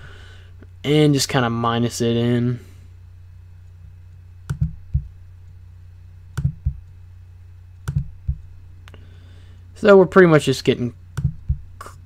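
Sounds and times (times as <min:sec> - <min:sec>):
low electrical hum: 0:00.0 - 0:12.0
computer mouse buttons clicking: 0:04.5 - 0:05.1, 0:06.4 - 0:06.9, 0:07.8 - 0:08.4, 0:11.2 - 0:11.6.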